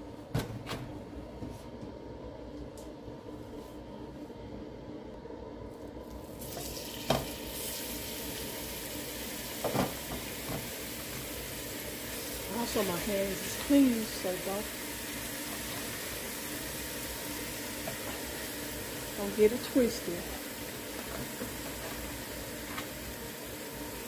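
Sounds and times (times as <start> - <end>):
meat sizzling in hot oil: 6.2 - 24.0.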